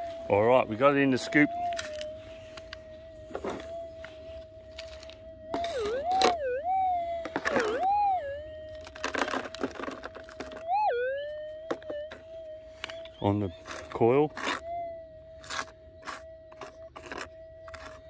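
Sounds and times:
metal detector warbling tone: 0.0 - 18.0.

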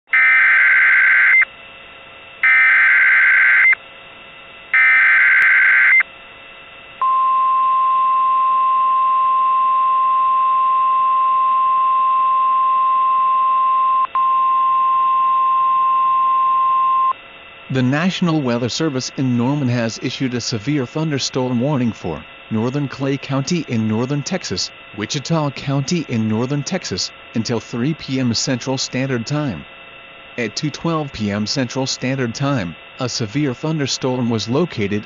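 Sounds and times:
steady warning alarm tone: 0.1 - 35.0.

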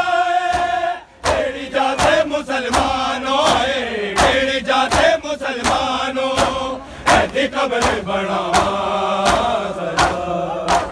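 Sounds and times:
men chanting in unison: 0.0 - 10.9
chest-beating slaps: 0.5 - 10.9.

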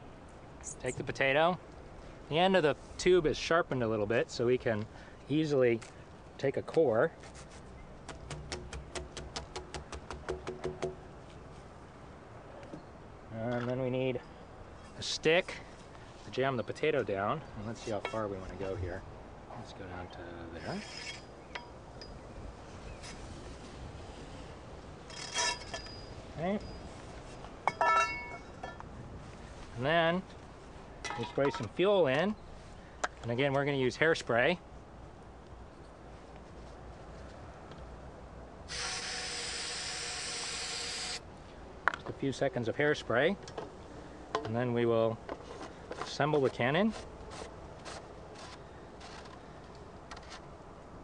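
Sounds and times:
ringing metallic clink: 25.3 - 26.8, 27.7 - 28.8.

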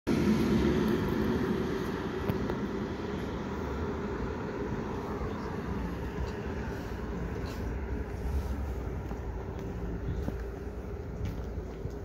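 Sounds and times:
vehicle engines idling: 0.1 - 12.0.

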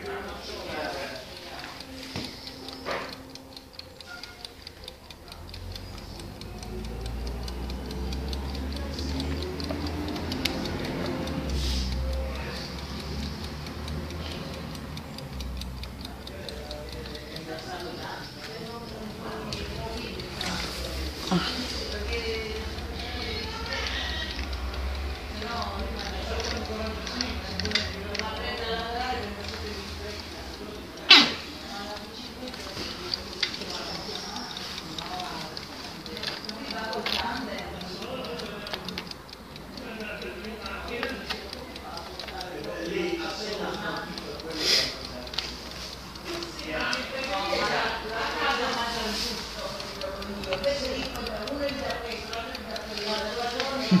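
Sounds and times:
clockwork timer ticking: 0.0 - 54.0.

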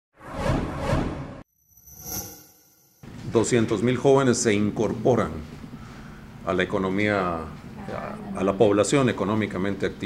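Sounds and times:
whoosh: 0.2 - 3.0
rising ringing tone: 1.5 - 3.0.

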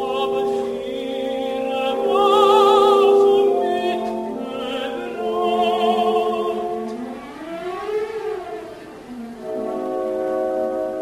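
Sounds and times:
orchestra sweeping in pitch: 0.0 - 11.0.

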